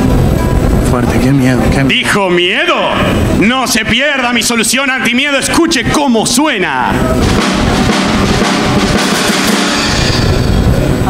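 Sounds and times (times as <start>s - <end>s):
bass drum: 6.9s - 11.0s
cymbals: 6.9s - 11.0s
snare drum: 7.2s - 10.4s.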